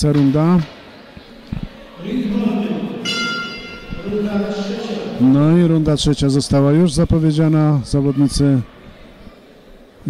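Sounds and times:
man announcing in echoing hall: 0:02.0 - 0:08.7
boxing ring bell ringing: 0:03.0 - 0:04.7.

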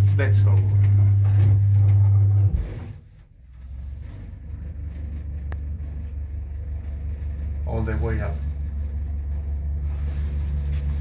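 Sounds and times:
elevator car travelling rumble: 0:00.0 - 0:11.0
loud low hum: 0:00.0 - 0:11.0.

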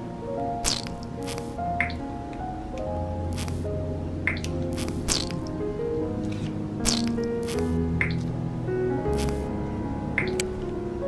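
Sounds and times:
background music: 0:00.0 - 0:11.0
paint squelching: 0:00.6 - 0:02.0, 0:04.3 - 0:05.6, 0:06.8 - 0:08.2.

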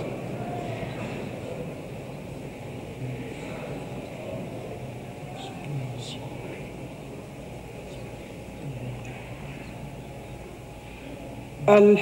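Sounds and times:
sound system hiss and hum: 0:00.0 - 0:12.0.

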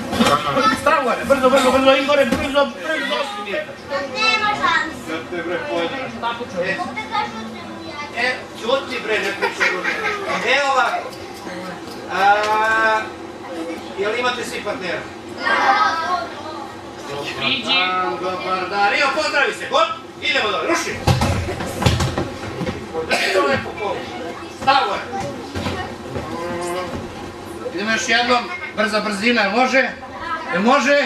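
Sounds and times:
voices in a large hall: 0:00.0 - 0:31.0.

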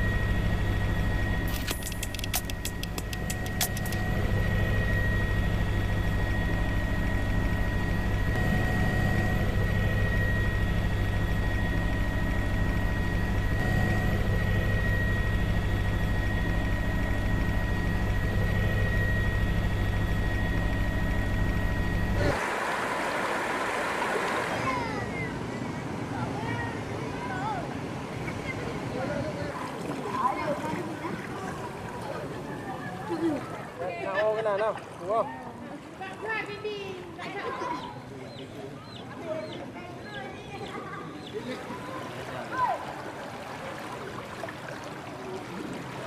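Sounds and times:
drone rotors humming with whine: 0:00.0 - 0:34.0
quick clicks: 0:01.5 - 0:04.1
rushing wind and water: 0:22.3 - 0:28.7.

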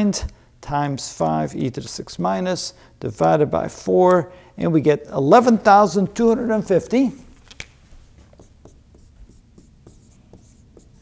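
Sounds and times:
marker pen writing on whiteboard: 0:08.1 - 0:11.0.

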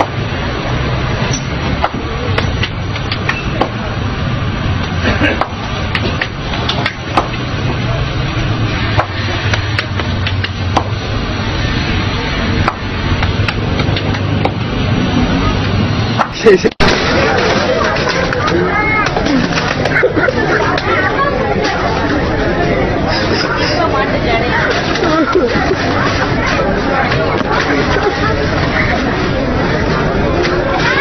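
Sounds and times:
street noise: 0:00.0 - 0:31.0
voices: 0:00.0 - 0:31.0.

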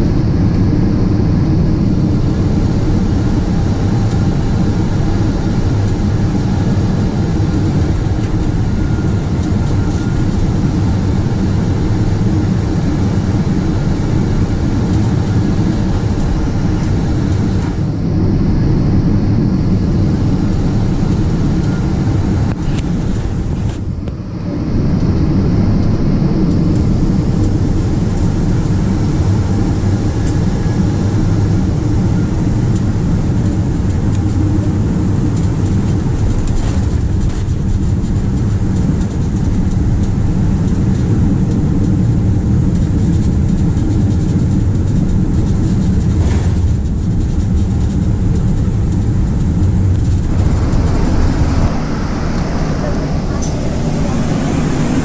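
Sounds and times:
aircraft engines and airflow rumble: 0:00.0 - 0:55.0.

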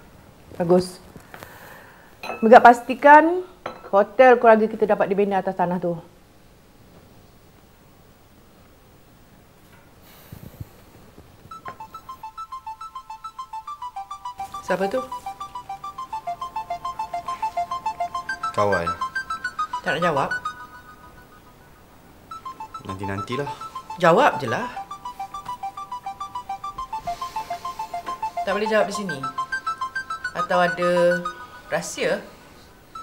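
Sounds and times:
phone ringtone beeping melody: 0:11.5 - 0:33.0.

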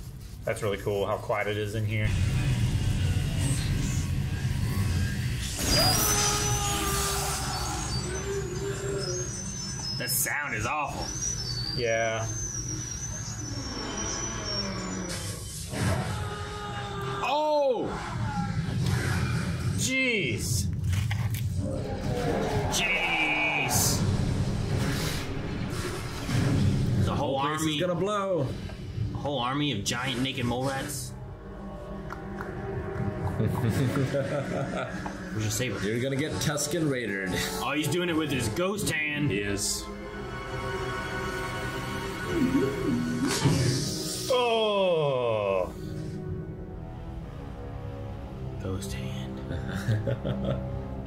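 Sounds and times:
shrill whining tones: 0:03.0 - 0:18.8, 0:21.6 - 0:25.8.

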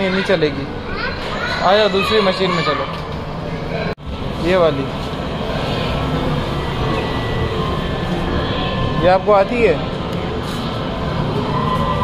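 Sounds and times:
arcade rumble and hiss: 0:03.7 - 0:12.0.

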